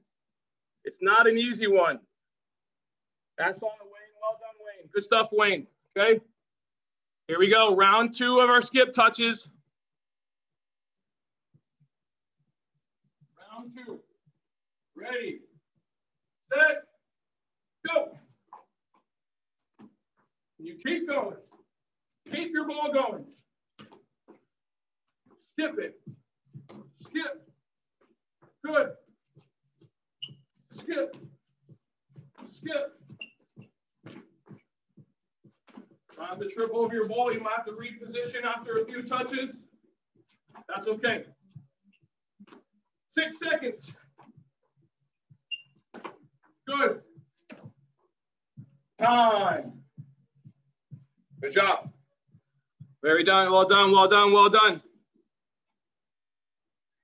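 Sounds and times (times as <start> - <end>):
footsteps on hard floor: 18.2 - 20.4, 23.2 - 42.8, 43.8 - 53.0
soccer ball taps on hard floor: 33.1 - 34.6, 45.9 - 46.3
person speaking: 36.2 - 39.6.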